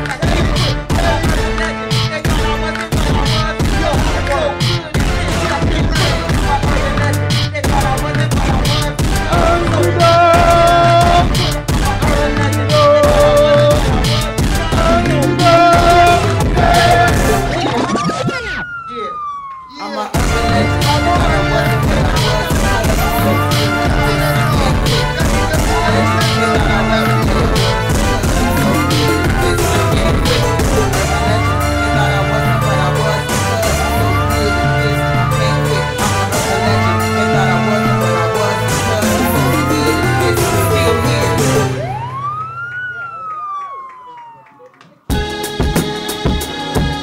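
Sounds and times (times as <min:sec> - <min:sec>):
music: 0:00.0 - 0:18.6, 0:20.1 - 0:42.8, 0:43.5 - 0:47.0
siren sound effect: 0:15.0 - 0:21.7, 0:41.5 - 0:45.0.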